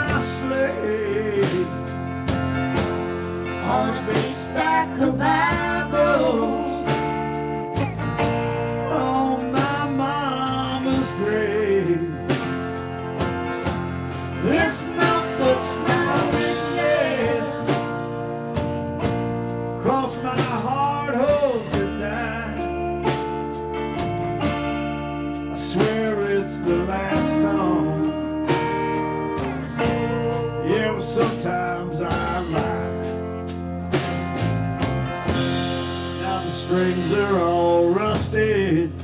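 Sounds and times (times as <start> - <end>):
electric guitar bending notes: 0.0 - 38.9
blues-rock band playing: 0.0 - 39.0.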